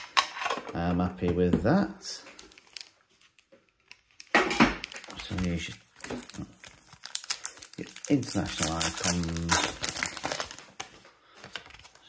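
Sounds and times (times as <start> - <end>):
cards rustling: 2.2 - 12.0
plastic wrapper crinkling: 2.2 - 12.0.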